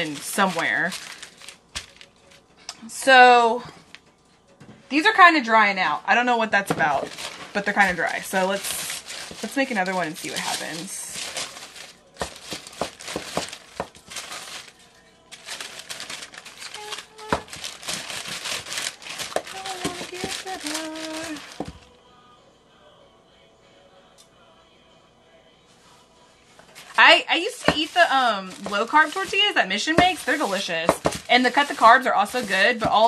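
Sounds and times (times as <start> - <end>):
parchment paper crinkling: 0.0 - 2.4, 6.8 - 21.8, 26.8 - 33.0
rolling pin rolling dough: 27.4 - 33.0.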